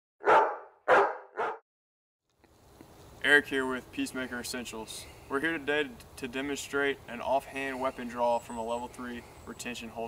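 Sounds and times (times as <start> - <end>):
dog barking: 0.2 - 1.6.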